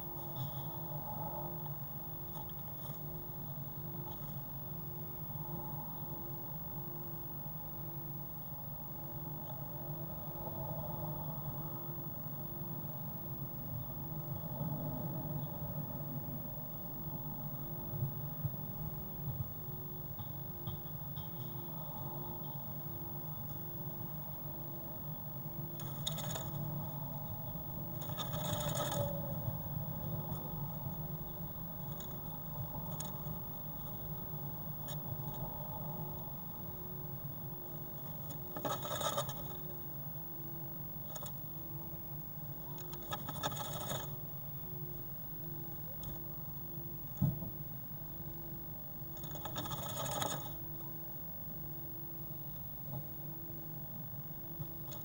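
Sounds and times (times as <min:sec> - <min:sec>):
faint pulsing tone: 0:00.0 - 0:55.0
low electrical hum: 0:00.0 - 0:55.0
scratchy rustles: 0:02.3 - 0:03.2, 0:25.7 - 0:27.0, 0:27.9 - 0:29.4, 0:31.8 - 0:34.1, 0:37.7 - 0:39.8, 0:41.0 - 0:41.5, 0:42.7 - 0:44.3, 0:49.1 - 0:50.7.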